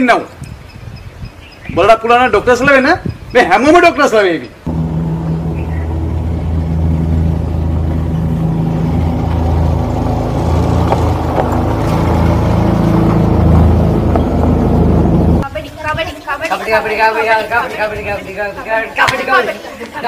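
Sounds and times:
car engine driving past: 0:04.7 - 0:15.4.

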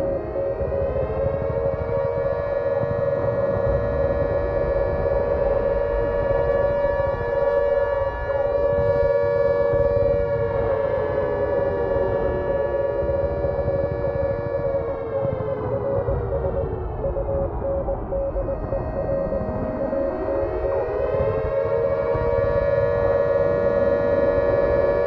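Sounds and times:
siren-like wail: 0:00.0 - 0:25.0.

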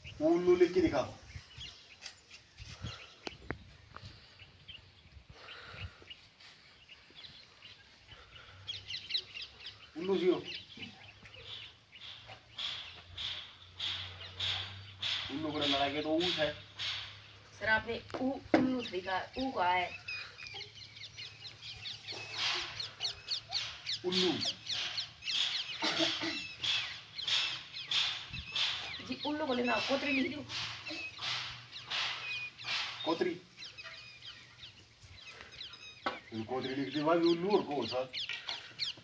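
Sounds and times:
faint birds chirping: 0:00.0 - 0:39.0.

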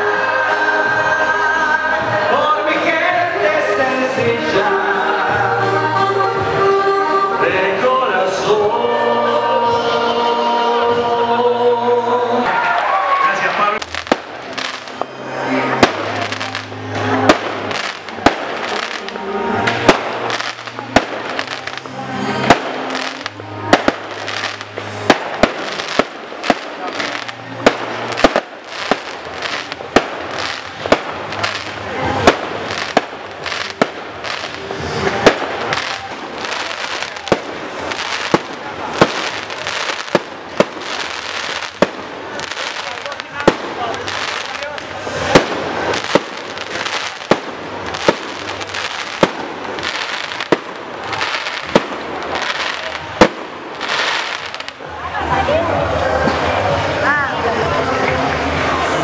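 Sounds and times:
firework bangs: 0:12.5 - 0:55.0
fireworks crackling: 0:12.5 - 0:59.0.

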